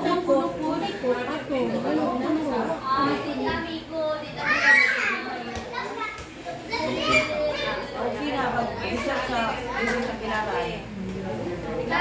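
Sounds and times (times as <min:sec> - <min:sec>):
family talking over one another: 0:00.0 - 0:12.0
child's high voice: 0:04.2 - 0:06.1.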